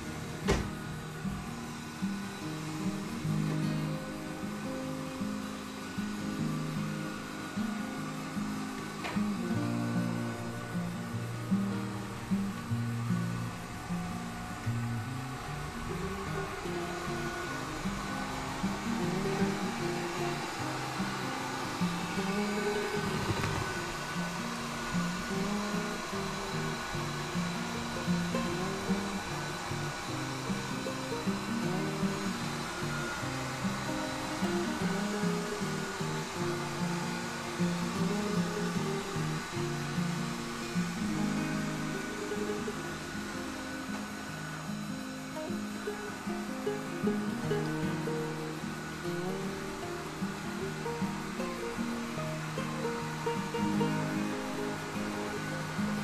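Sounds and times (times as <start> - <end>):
robot vacuum motor whirring: 0.0 - 56.0.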